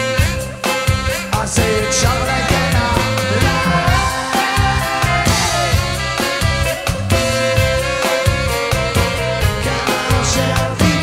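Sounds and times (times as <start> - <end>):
drums: 0.0 - 11.0
electric guitar: 0.0 - 11.0
saxophone melody: 0.0 - 11.0.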